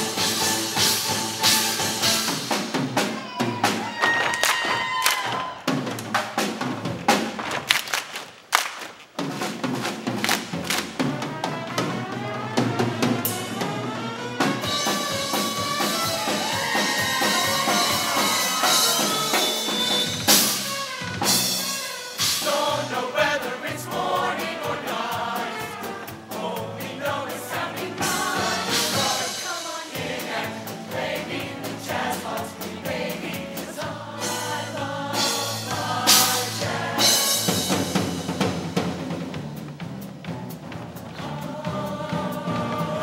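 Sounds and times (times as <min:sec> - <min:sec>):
jazz band playing: 0:00.0 - 0:03.8, 0:09.1 - 0:43.0
drum and cymbal hits: 0:00.0 - 0:04.0, 0:09.1 - 0:43.0.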